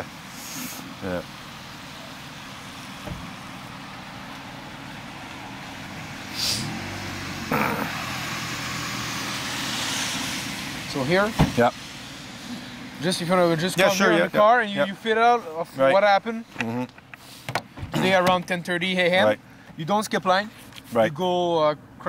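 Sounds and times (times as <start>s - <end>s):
street traffic noise: 0.0s - 22.0s
vehicle passing: 1.1s - 16.0s.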